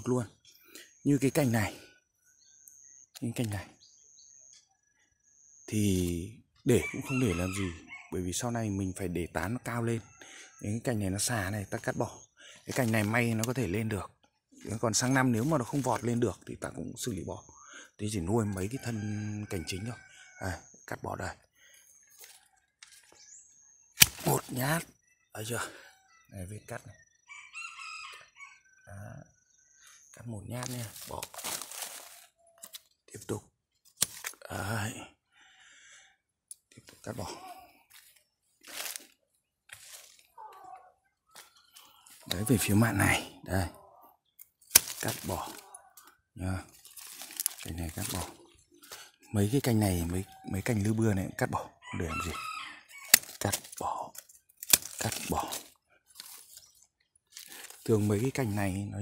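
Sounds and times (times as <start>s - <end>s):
rooster crowing: 6.7s - 8.2s, 18.5s - 20.6s, 27.3s - 28.6s, 51.5s - 53.2s
leaves rustling and crunching: 24.0s - 24.7s, 30.6s - 32.8s, 37.9s - 40.4s, 44.6s - 45.7s, 46.7s - 48.4s, 53.0s - 58.6s.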